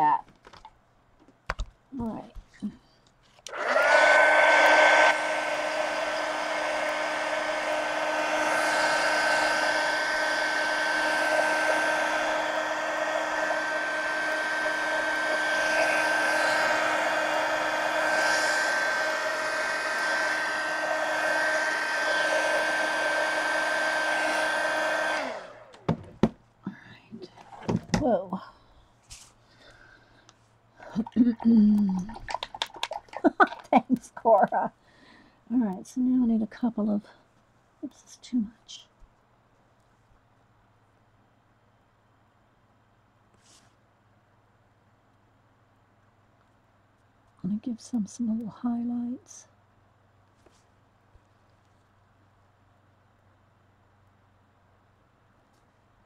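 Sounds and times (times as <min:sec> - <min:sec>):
heat gun blowing air: 0:03.5 - 0:26.0.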